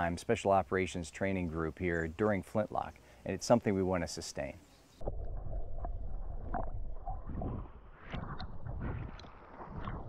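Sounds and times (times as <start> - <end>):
bubbling blips: 5.0 - 10.0
underwater rumble of water: 5.0 - 10.0.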